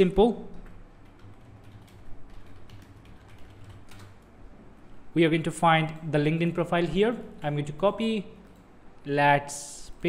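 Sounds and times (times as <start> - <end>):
computer keyboard typing: 0.5 - 4.3.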